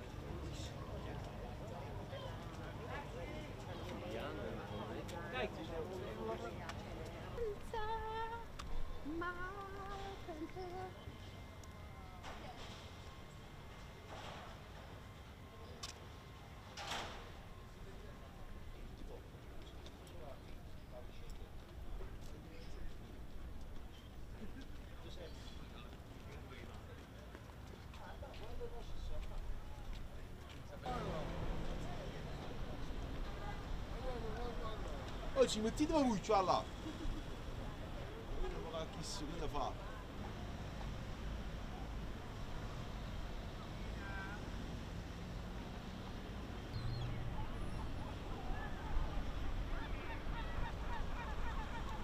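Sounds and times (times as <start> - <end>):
distant voices murmuring: 0.0 - 52.0.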